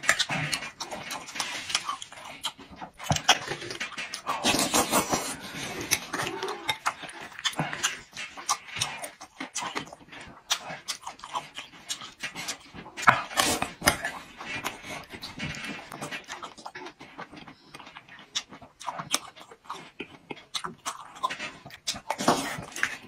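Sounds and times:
man chewing and slurping: 0.0s - 23.0s.

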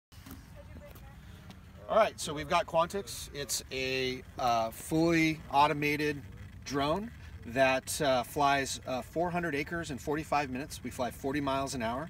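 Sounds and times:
low outdoor rumble: 0.1s - 12.0s
man speaking: 1.8s - 12.0s.

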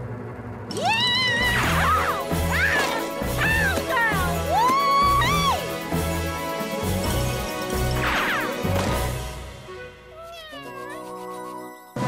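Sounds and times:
cartoon cat-like calls: 10.1s - 11.4s.

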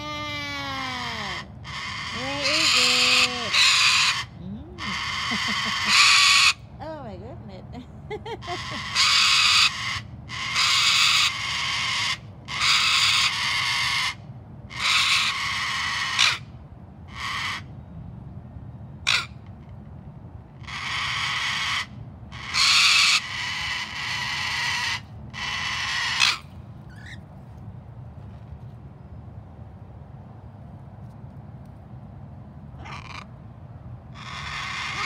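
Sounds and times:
harsh animal calls: 0.0s - 6.7s, 8.4s - 16.5s, 17.1s - 17.7s, 19.0s - 19.4s, 20.6s - 27.2s, 32.8s - 33.4s, 34.1s - 35.0s.

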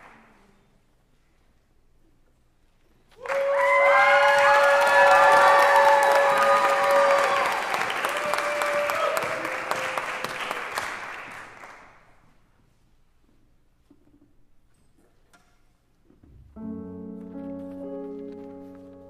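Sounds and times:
audience applauding and cheering: 3.2s - 12.0s.

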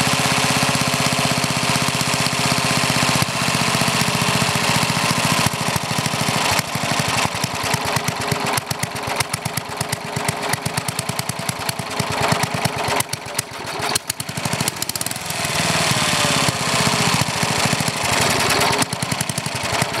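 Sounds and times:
single-cylinder engine running: 0.0s - 20.0s.

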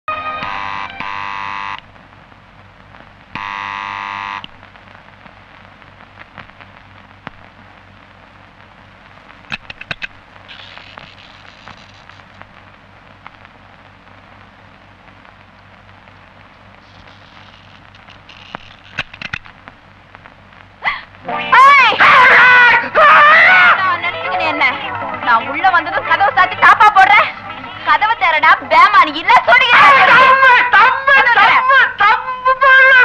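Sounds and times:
film soundtrack hiss: 0.1s - 33.0s.

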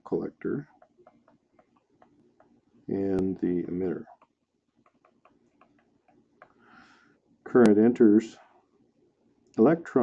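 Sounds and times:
stylus tapping on pen tablet: 0.7s - 2.6s, 4.1s - 6.6s.

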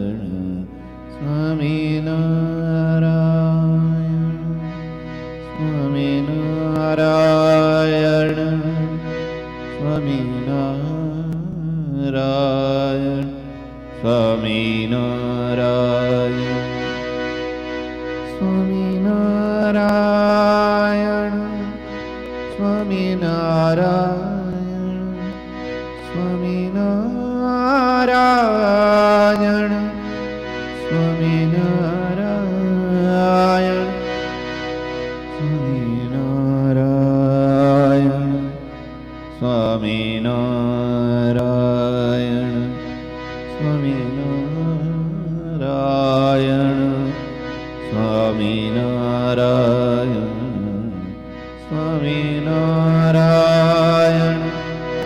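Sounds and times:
man singing devotional chant: 0.0s - 4.6s, 5.5s - 17.0s, 18.3s - 30.1s, 30.8s - 34.1s, 35.3s - 55.0s
steady drone: 0.0s - 55.0s
sustained musical accompaniment: 0.0s - 55.0s
man chanting: 9.8s - 16.9s, 39.3s - 55.0s.

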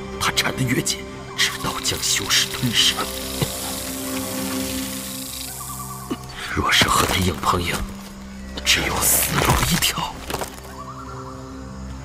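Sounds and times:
low drone film music: 0.0s - 12.0s
steady hiss: 1.4s - 6.5s.

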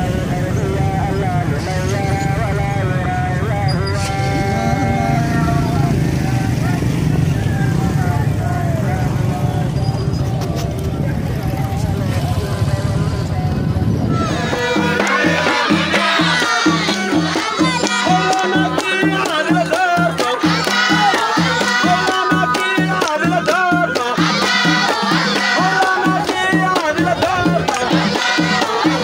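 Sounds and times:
voices singing held notes: 0.0s - 10.5s, 11.6s - 29.0s
motorcycles riding past: 0.0s - 29.0s.

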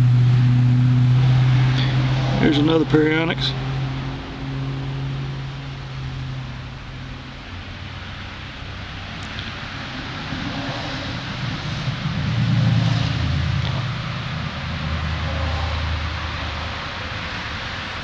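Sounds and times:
low motor hum: 0.0s - 18.0s.

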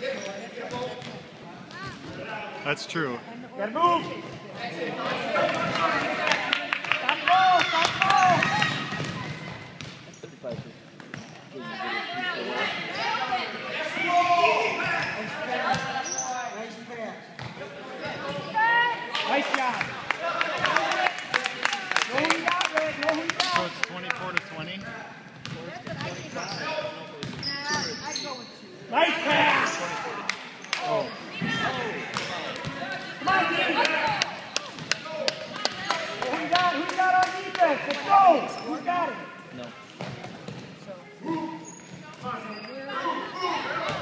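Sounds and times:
people shouting and talking: 0.0s - 10.6s, 11.3s - 44.0s.

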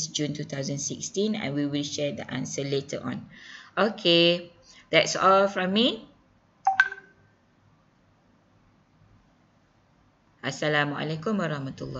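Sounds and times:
two-tone electronic beep: 6.7s - 7.2s.

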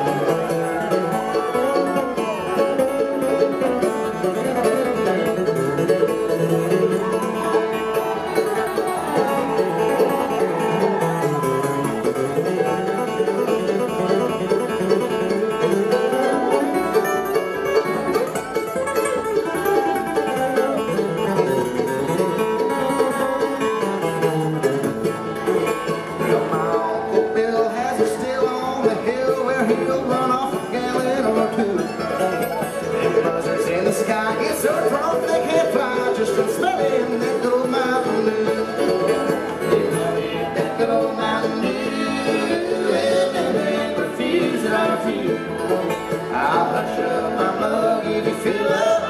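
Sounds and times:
bluegrass band playing: 0.0s - 49.0s.

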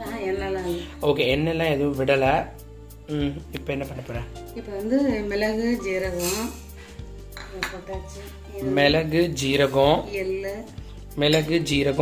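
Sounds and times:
music with singing: 0.0s - 12.0s.

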